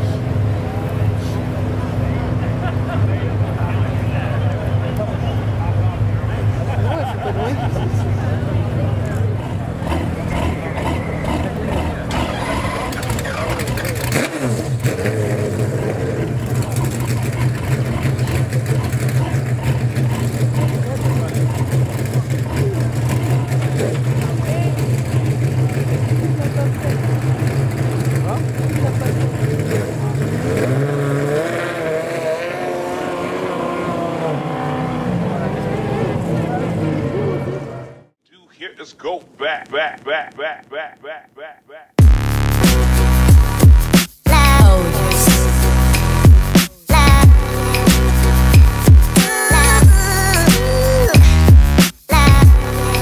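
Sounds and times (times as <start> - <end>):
car engine idling: 0.0 - 30.4, 42.0 - 53.0.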